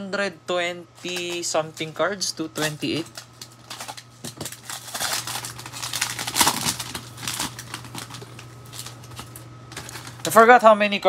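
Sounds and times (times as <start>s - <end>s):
plastic wrapper crinkling: 1.0s - 10.4s.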